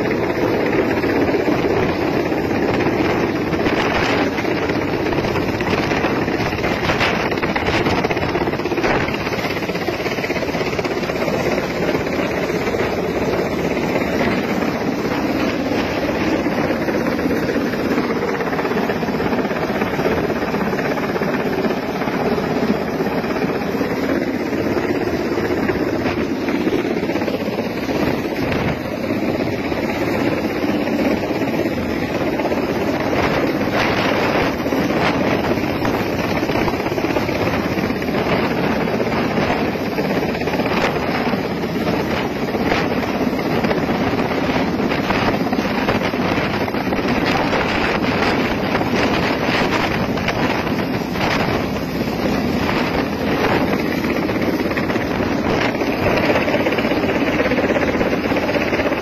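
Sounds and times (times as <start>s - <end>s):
helicopter hovering overhead: 0.0s - 59.0s
wind buffeting microphone: 0.0s - 59.0s.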